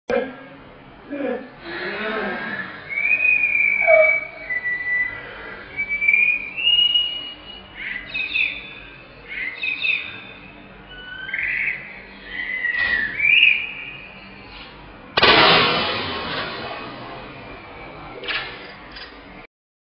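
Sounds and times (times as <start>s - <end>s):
high whistle-like chirps: 2.6s - 8.8s, 9.4s - 14.6s
water rocket launch rush: 15.2s - 17.3s.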